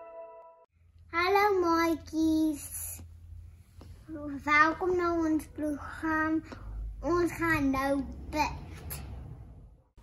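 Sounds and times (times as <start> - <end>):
steady low hum: 0.8 - 9.9.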